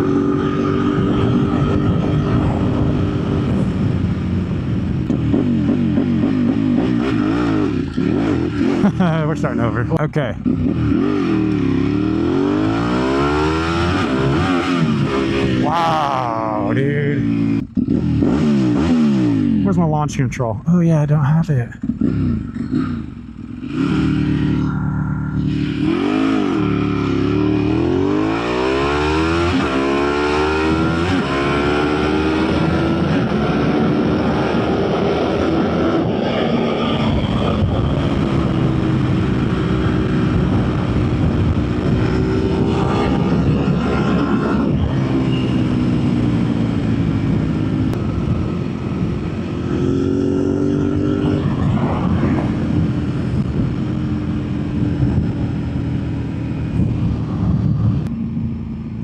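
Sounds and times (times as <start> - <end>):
motorcycle engine revving: 0.0 - 19.8, 21.7 - 59.0.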